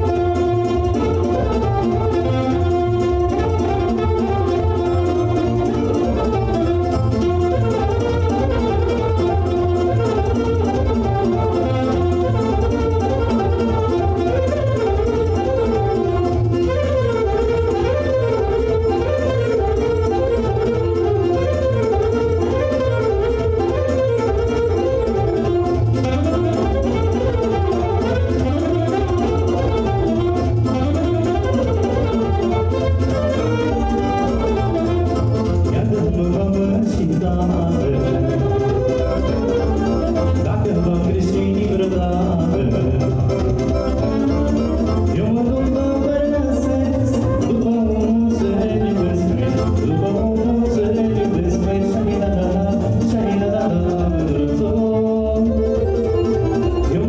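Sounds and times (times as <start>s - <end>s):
keyboard accompaniment with bass: 0.0s - 57.0s
saxophone melody: 0.0s - 57.0s.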